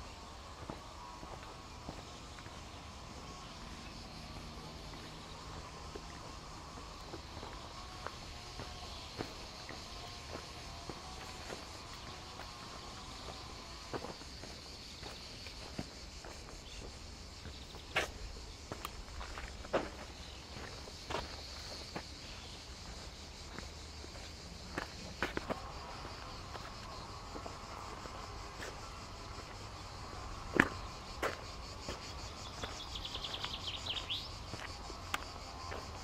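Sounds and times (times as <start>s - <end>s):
cicadas buzzing: 0.0s - 36.0s
footsteps on a dirt path: 0.0s - 36.0s.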